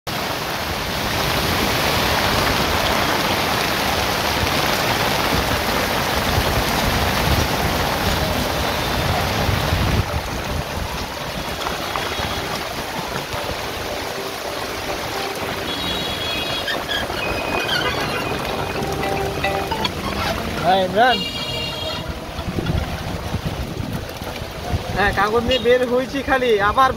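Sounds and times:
heavy rain hissing: 0.1 - 26.9.

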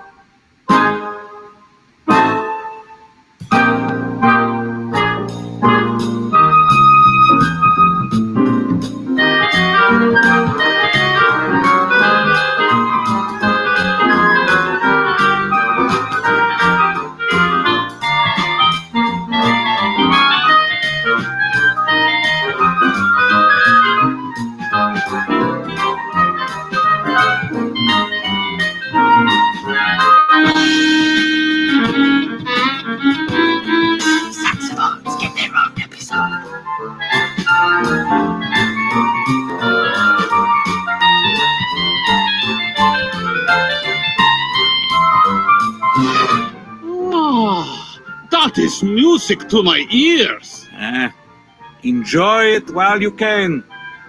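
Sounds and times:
woodwind quintet playing: 0.0 - 35.1, 36.1 - 51.1
steady drum beat: 30.5 - 36.0.

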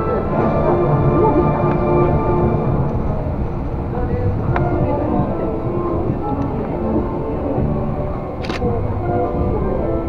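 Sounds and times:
monorail rumble: 0.0 - 10.0
on-board background music: 0.0 - 10.0.

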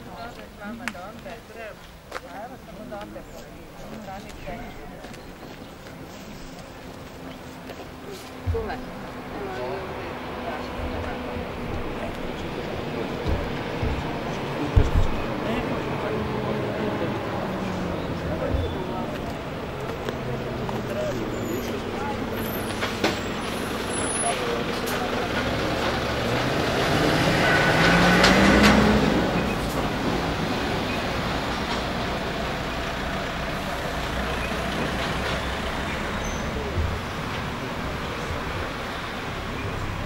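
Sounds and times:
outdoor background: 0.0 - 40.0
motor vehicle passing: 6.6 - 40.0.

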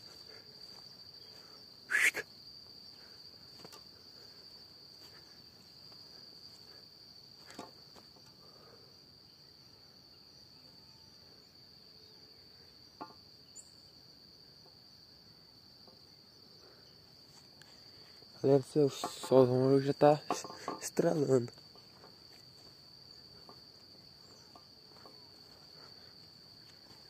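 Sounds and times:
high-pitched insect drone: 0.0 - 14.0.

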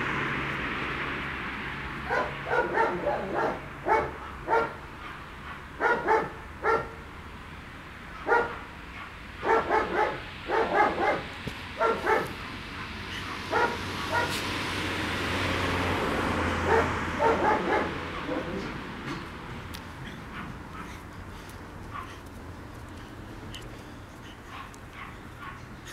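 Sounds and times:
dog barking and yipping: 2.0 - 7.0, 8.2 - 14.6, 16.5 - 18.8, 20.0 - 21.1, 21.8 - 22.3, 24.3 - 25.9.

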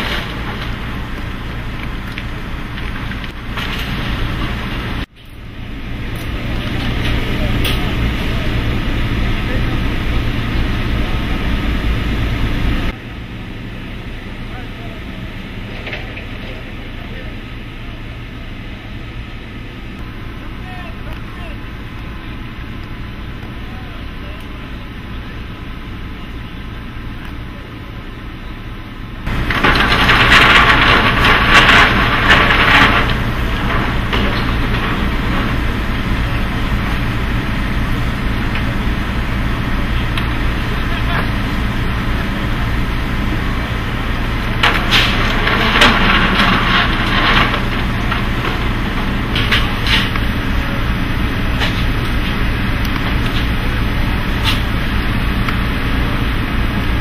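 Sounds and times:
low engine hum: 0.0 - 57.0
indistinct voices: 5.9 - 13.0, 14.0 - 18.8, 20.0 - 28.6, 29.3 - 57.0.

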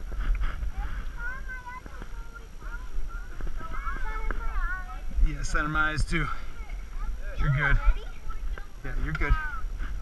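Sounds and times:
faint voices: 0.0 - 10.0
microphone handling rumble: 7.0 - 10.0.

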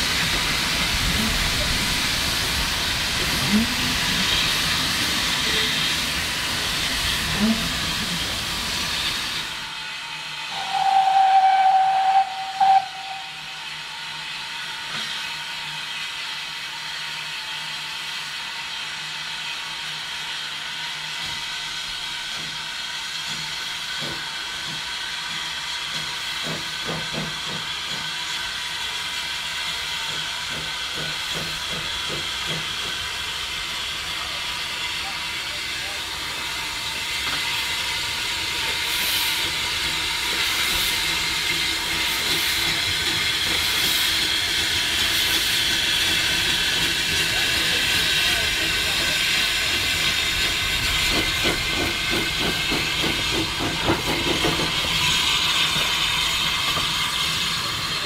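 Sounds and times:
steam locomotive hissing: 0.0 - 58.0
steam whistle blast: 10.2 - 14.2
short whistle toot: 10.5 - 13.7.

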